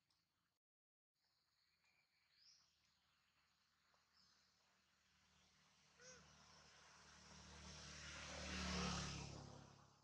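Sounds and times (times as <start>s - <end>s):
motor vehicle passing: 5.4s - 10.0s.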